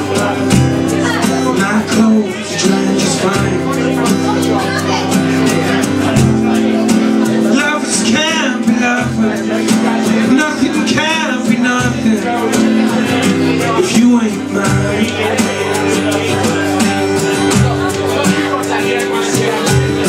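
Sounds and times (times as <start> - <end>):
acoustic guitar strumming: 0.0 - 20.0
man singing into a microphone: 0.0 - 20.0.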